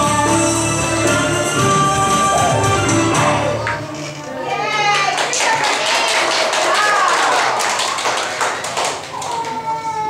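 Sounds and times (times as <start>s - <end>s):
children clapping: 4.9s - 9.8s
children calling out: 9.1s - 10.0s.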